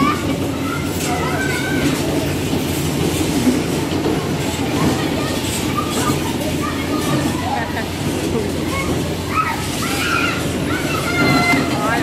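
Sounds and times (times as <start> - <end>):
bumper cars rolling rumble: 0.0 - 12.0
faint voices: 0.0 - 12.0.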